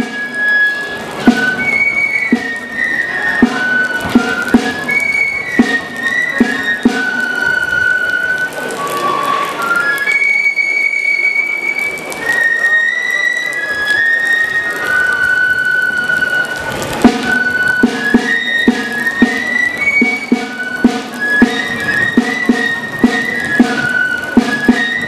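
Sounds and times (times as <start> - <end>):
high-pitched flute: 0.0 - 25.0
small drum beating: 1.2 - 7.6, 17.0 - 25.0.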